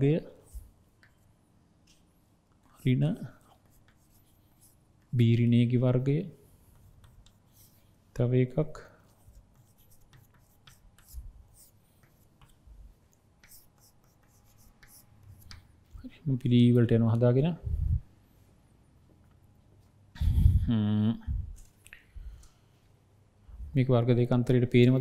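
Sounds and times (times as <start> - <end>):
chalk scratching on blackboard: 0.3 - 1.4, 2.7 - 5.1, 6.4 - 8.0, 9.0 - 12.6, 13.4 - 15.7.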